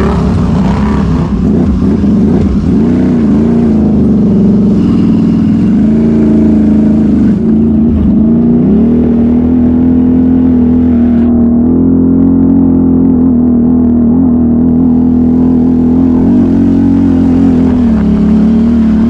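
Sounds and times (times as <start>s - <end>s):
atv engine revving: 0.0s - 19.0s.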